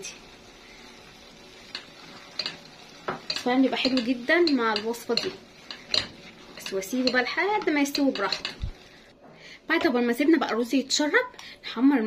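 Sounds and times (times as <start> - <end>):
spoon clicking on pot: 1.7 - 8.8.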